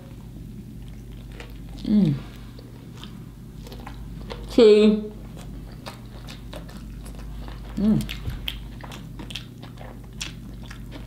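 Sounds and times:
person chewing food: 0:00.0 - 0:11.0
person humming: 0:01.8 - 0:02.3, 0:07.8 - 0:08.1.

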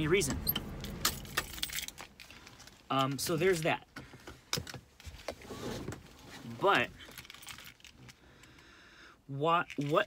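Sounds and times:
handling clicks and rattles: 0:09.6 - 0:10.0.

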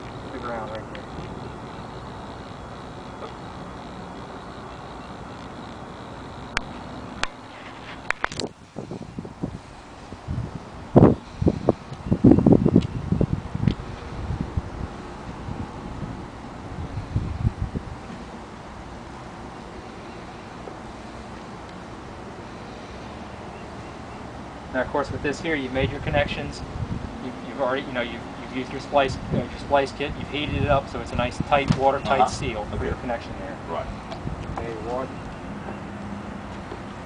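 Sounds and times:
wind on microphone: 0:00.9 - 0:18.9, 0:25.0 - 0:35.3.

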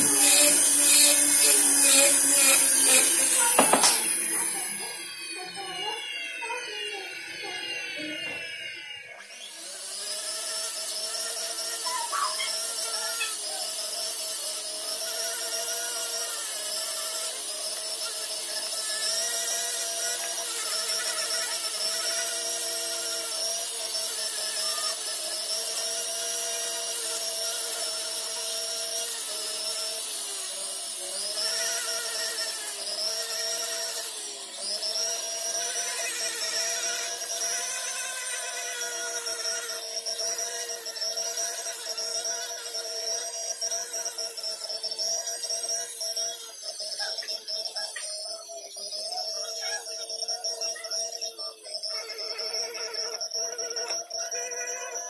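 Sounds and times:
rotary tool grinding metal: 0:00.0 - 0:55.0.

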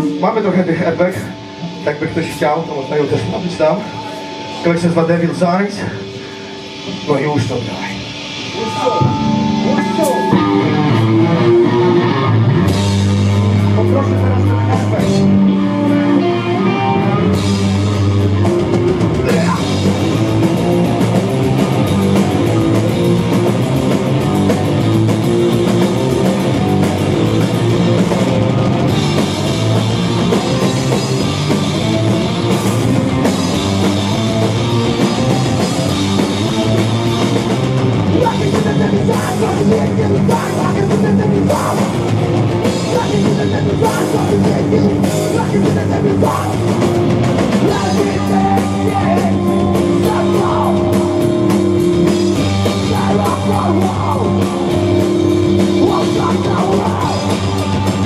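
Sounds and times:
rock band playing live: 0:00.0 - 0:58.0.

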